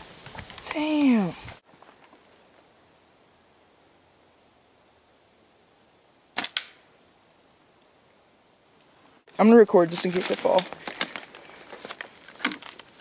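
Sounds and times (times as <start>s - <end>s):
faint hiss: 0.0s - 10.6s
slingshot snaps: 6.4s - 6.8s.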